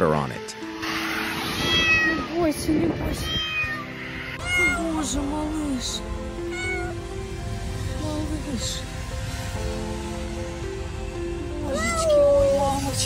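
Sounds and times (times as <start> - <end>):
background music: 0.0 - 13.0
kitten mewing: 3.0 - 5.1, 6.5 - 7.0, 11.7 - 12.5.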